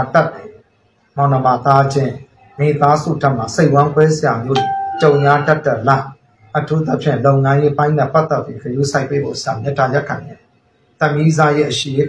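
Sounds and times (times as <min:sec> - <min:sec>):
man talking: 0:01.2 - 0:10.4, 0:11.0 - 0:12.0
short electronic beep: 0:04.6 - 0:05.6.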